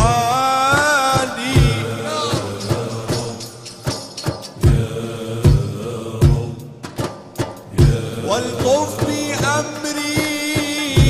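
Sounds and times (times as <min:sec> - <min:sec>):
deep drum strokes: 0:00.0 - 0:09.8
men's chorus singing in unison: 0:00.0 - 0:11.0.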